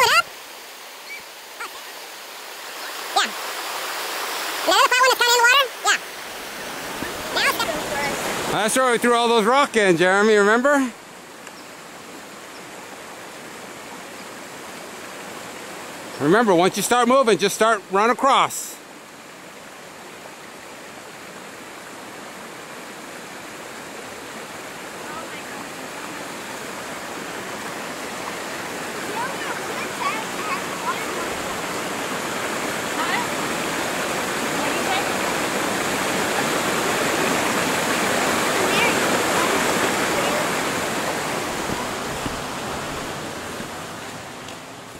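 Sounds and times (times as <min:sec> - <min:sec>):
creek water rushing over rocks: 0:00.0 - 0:44.9.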